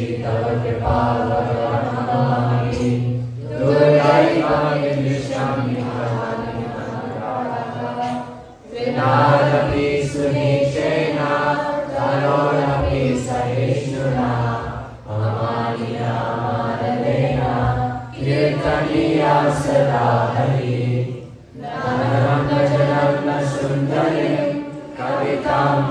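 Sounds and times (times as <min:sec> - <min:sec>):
group chanting in unison: 0:00.0 - 0:25.9.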